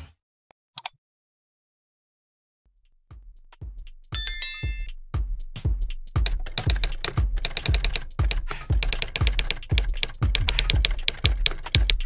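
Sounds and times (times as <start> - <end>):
background music with deep beat: 2.8 - 12.0
keyboard typing clicks: 6.3 - 12.0.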